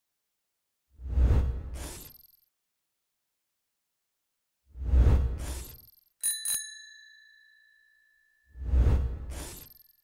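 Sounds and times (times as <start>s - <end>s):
small bell dings: 6.2s - 8.5s.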